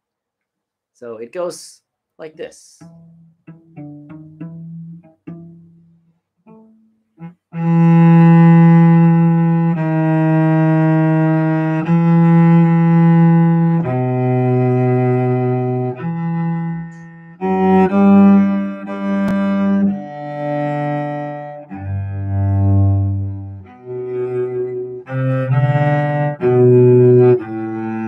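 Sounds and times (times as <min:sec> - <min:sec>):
bowed cello melody: 0:02.8 - 0:28.0.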